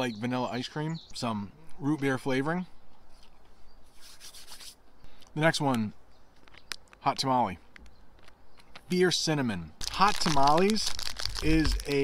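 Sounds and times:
plastic package crinkling: 9.8 - 12.0.

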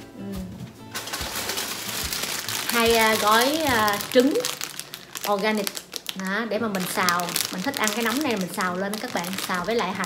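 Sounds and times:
person humming: 0.1 - 0.7
plastic packaging crinkling: 0.9 - 10.0.

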